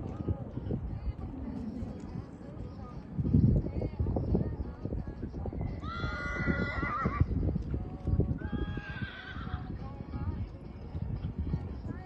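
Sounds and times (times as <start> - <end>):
hooves cantering on sand: 0.0 - 12.0
horse whinnying: 5.8 - 7.3, 8.6 - 9.6.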